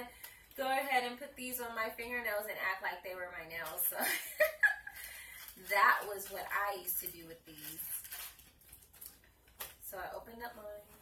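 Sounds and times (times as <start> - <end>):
plastic bag crinkling: 3.5 - 11.0.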